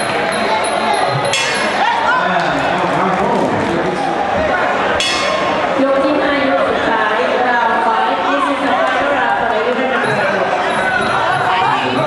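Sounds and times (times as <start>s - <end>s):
crowd chattering and calling: 0.0s - 12.0s.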